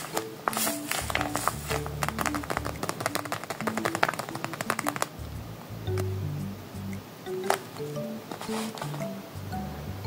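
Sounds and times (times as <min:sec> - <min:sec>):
paper squishy crinkling: 0:00.0 - 0:05.1
soft background music: 0:00.0 - 0:10.0.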